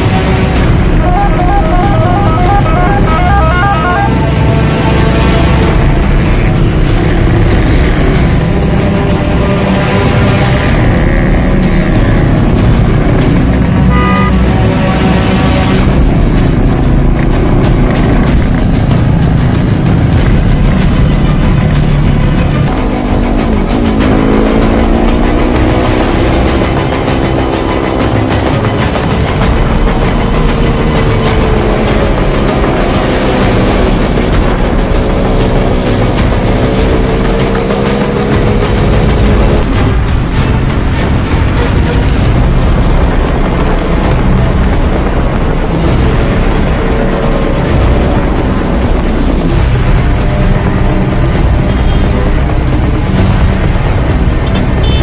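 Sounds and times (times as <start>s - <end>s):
road noise: 0.0s - 55.0s
motor scooter engines: 54.4s - 55.0s.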